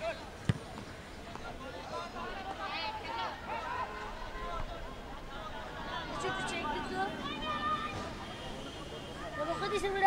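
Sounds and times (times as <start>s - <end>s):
voices shouting: 1.7s - 10.0s.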